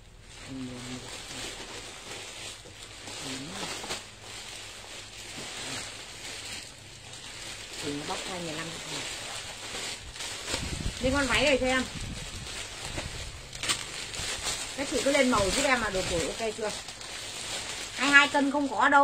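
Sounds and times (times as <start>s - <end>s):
plastic bags crinkling: 0.0s - 19.0s
quiet voice: 0.4s - 1.6s, 3.2s - 3.8s.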